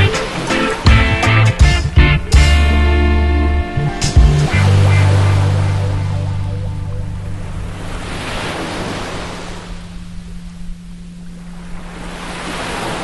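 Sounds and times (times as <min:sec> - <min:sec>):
ocean surf breaking on beach: 0:00.0 - 0:01.4, 0:04.3 - 0:13.0
steady low tone hum: 0:01.6 - 0:13.0.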